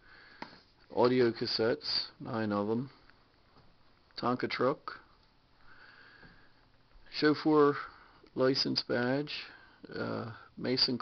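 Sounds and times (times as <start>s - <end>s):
faint breath through nose: 0.0s - 0.8s, 5.6s - 6.7s.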